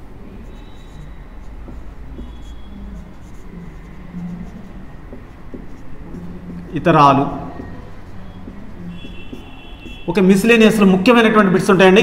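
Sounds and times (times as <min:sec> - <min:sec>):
marker writing on whiteboard: 0:00.0 - 0:11.2
marker squeaks: 0:00.4 - 0:10.8.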